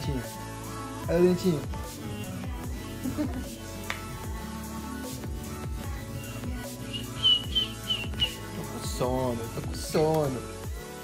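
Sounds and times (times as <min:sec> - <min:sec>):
background music: 0:00.0 - 0:11.0
short high chirps: 0:06.9 - 0:08.4.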